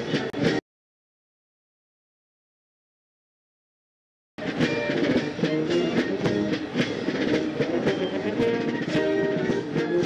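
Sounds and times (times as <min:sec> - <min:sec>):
marching band playing: 0:00.0 - 0:00.6, 0:04.4 - 0:10.0.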